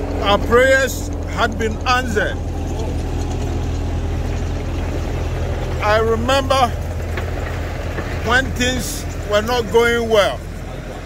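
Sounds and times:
vehicle engine idling: 0:00.0 - 0:11.0
man talking: 0:00.2 - 0:02.4, 0:05.8 - 0:06.8, 0:08.2 - 0:10.9.

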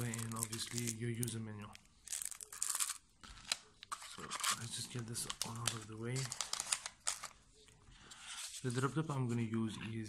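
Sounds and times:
plastic bags crinkling: 0:00.0 - 0:01.4, 0:02.0 - 0:07.4.

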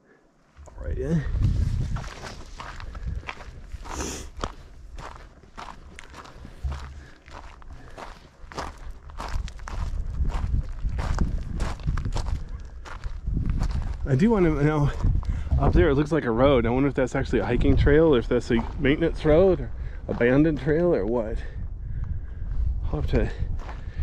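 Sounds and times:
footsteps on gravel trail: 0:00.6 - 0:16.1, 0:23.5 - 0:24.0.

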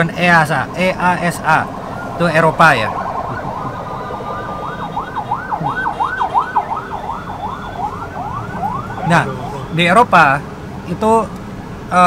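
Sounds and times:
siren yelping: 0:00.0 - 0:09.9
low road rumble: 0:00.0 - 0:12.0.

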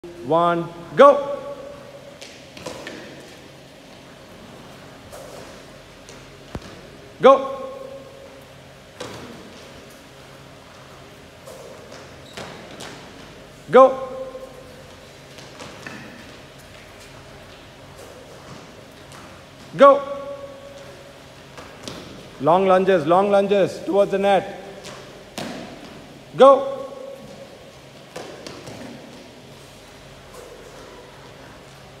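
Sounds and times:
footsteps on court mat: 0:01.6 - 0:07.2, 0:08.0 - 0:22.5, 0:24.5 - 0:32.0.

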